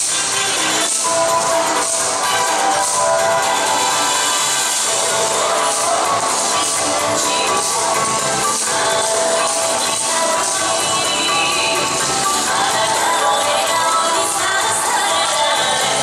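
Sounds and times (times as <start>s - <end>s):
dance music with steady beat: 0.0s - 16.0s.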